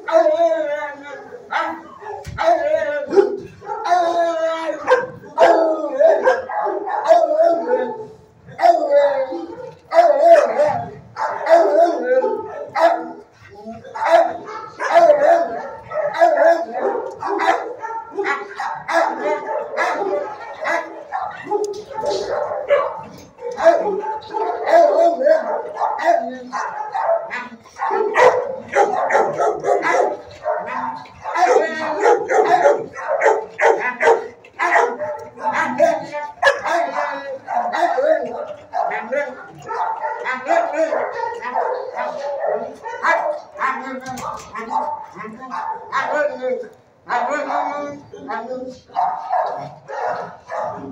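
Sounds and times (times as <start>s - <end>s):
dogs barking and howling: 0.0s - 50.9s.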